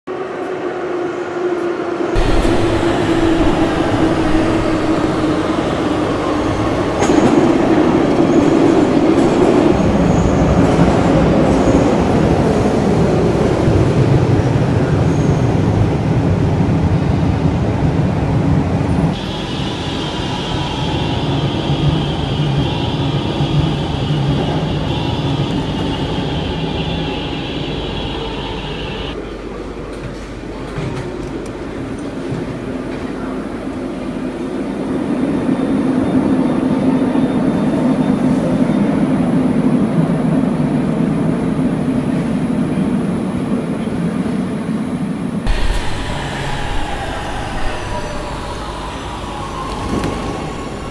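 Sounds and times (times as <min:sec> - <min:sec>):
train running rumble and rattle: 0:02.0 - 0:50.9
steady high-pitched tone: 0:02.2 - 0:12.2, 0:45.5 - 0:50.9.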